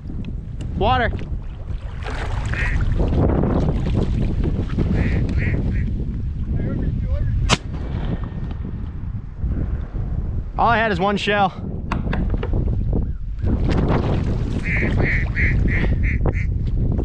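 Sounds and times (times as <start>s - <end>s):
wind buffeting microphone: 0.0s - 17.0s
shotgun shot: 7.4s - 8.4s.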